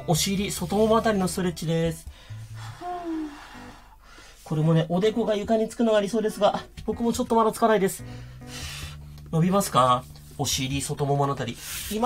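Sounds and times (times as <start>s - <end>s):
soft background music: 0.0s - 12.0s
man breathing out with effort: 2.1s - 4.4s, 8.0s - 9.1s.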